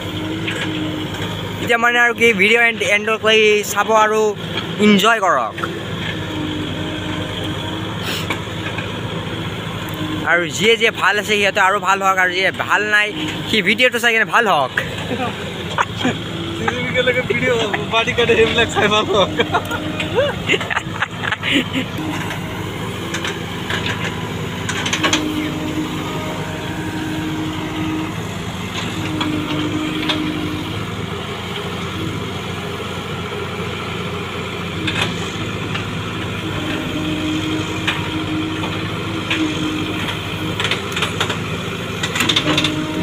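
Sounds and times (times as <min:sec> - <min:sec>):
diesel engine running: 0:00.0 - 0:43.0
hydraulic whine: 0:00.0 - 0:43.0.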